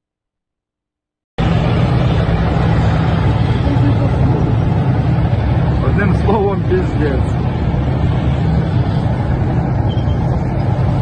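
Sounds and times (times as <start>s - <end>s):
tank engines rumbling: 1.4s - 11.0s.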